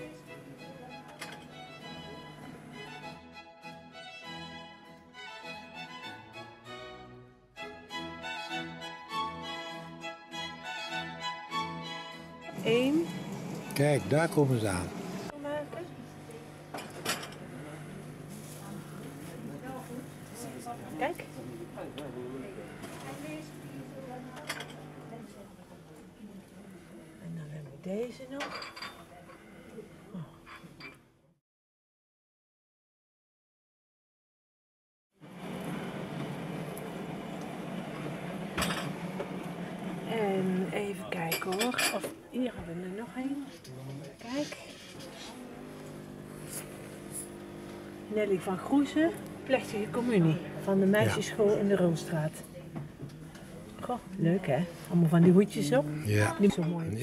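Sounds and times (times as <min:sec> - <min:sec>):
faint background voices: 0:15.4 - 0:30.8, 0:48.5 - 0:57.0
crockery and cutlery clinking: 0:16.7 - 0:17.5, 0:28.4 - 0:29.5, 0:41.2 - 0:42.2.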